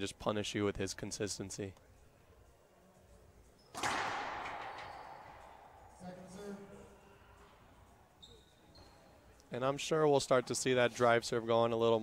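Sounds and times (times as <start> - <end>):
racquetball serve crack: 3.7 - 5.8.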